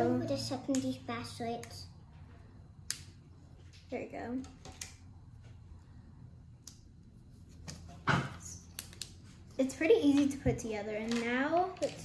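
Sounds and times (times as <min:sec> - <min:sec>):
plastic pieces clicking together: 0:10.9 - 0:12.0.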